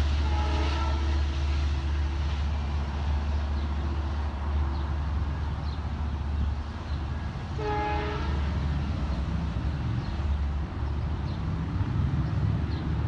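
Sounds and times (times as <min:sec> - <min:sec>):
train horn blast: 0:00.0 - 0:01.7, 0:07.5 - 0:08.8
low train rumble: 0:00.0 - 0:13.0.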